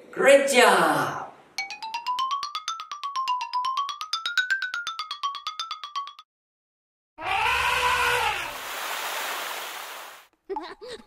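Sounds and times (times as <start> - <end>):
cartoon water spraying: 7.8 - 10.3.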